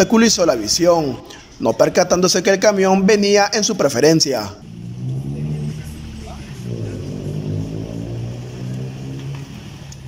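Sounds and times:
vehicle engine running low: 0:04.6 - 0:10.0.

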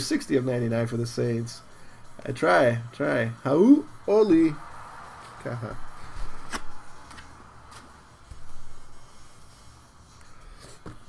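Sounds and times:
trading cards set down on felt: 0:06.4 - 0:08.4, 0:10.7 - 0:11.0.

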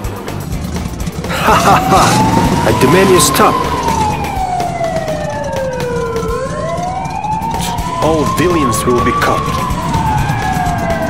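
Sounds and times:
police sirens wailing: 0:00.3 - 0:11.0.

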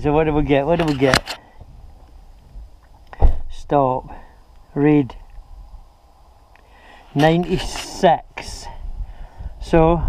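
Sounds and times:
person speaking: 0:00.0 - 0:01.4, 0:07.0 - 0:08.8.

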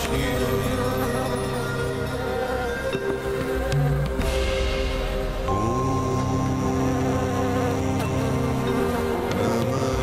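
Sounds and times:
background music: 0:00.0 - 0:10.0
bees buzzing: 0:00.0 - 0:10.0.

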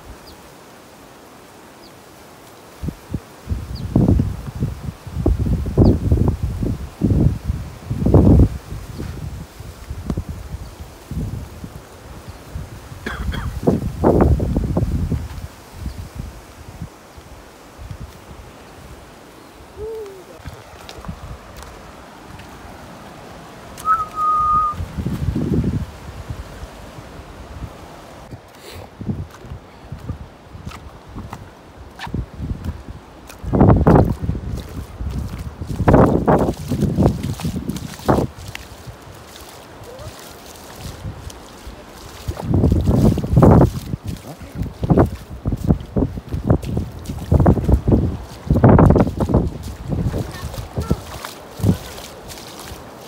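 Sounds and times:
wind buffeting microphone: 0:02.8 - 0:23.0, 0:23.6 - 0:53.0
feet splashing through water: 0:16.2 - 0:53.0
whistled note: 0:23.8 - 0:24.8.

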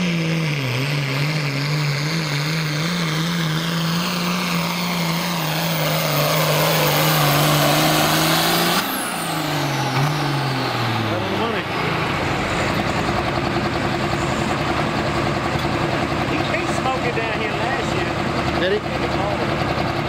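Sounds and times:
diesel tractor engine running hard: 0:00.0 - 0:20.0.

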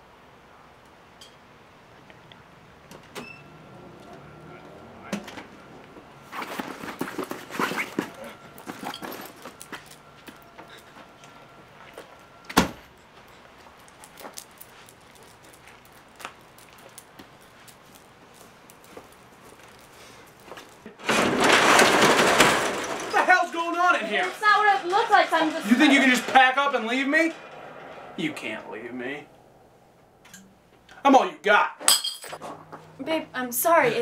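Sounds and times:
garage door rattling open: 0:21.0 - 0:30.8.

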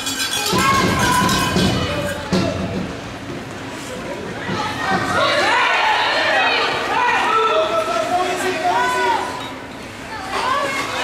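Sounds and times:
children shouting: 0:00.4 - 0:02.4, 0:04.4 - 0:07.7.

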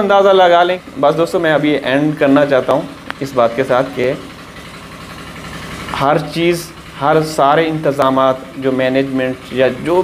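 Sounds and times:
pump engines humming: 0:00.0 - 0:10.0.

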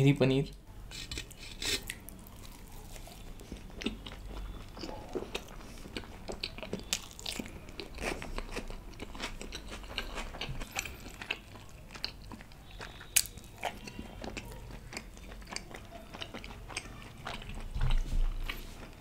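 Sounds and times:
person chewing food: 0:00.8 - 0:19.0
crunchy bite: 0:12.0 - 0:16.4.

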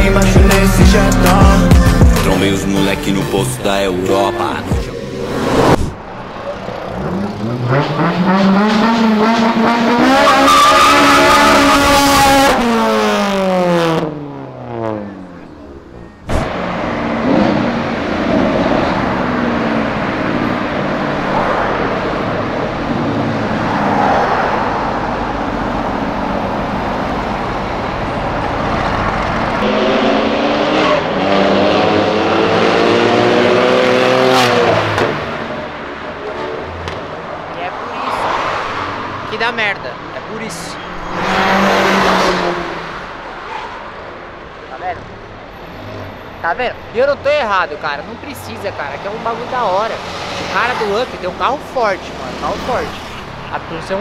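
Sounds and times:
street traffic noise: 0:00.0 - 0:54.0
sports car engines revving past: 0:00.1 - 0:54.0.

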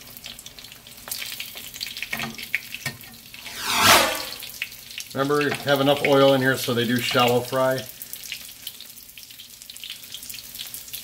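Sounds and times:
food sizzling in oil: 0:07.9 - 0:11.0.

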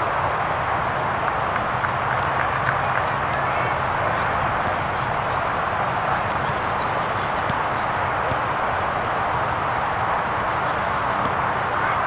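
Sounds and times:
outdoor rushing noise: 0:00.0 - 0:12.0.

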